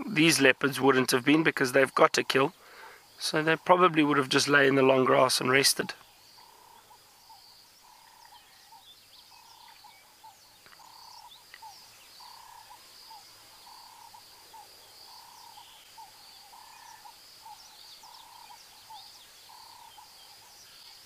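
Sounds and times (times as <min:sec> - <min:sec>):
bird chirps: 0:00.0 - 0:21.0.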